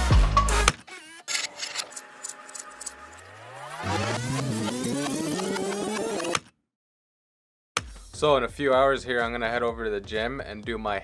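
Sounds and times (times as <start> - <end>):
music: 0.0 - 1.2, 1.9 - 6.2, 7.8 - 11.0
tape rewind whine rising: 1.3 - 6.4.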